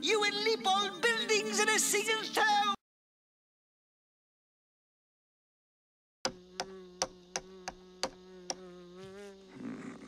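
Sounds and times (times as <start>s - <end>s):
cartoon housefly buzzing: 6.3s - 10.0s.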